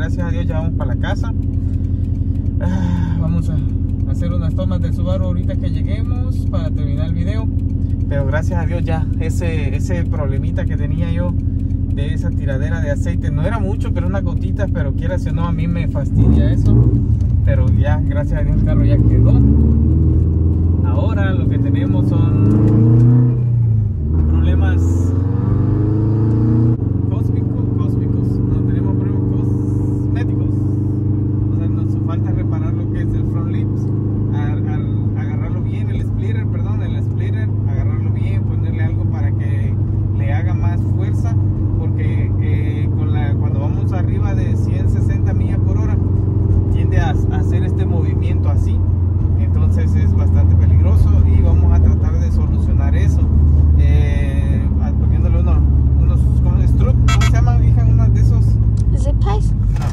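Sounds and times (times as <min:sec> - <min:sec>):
car engine and road noise: 0:00.0 - 0:59.9.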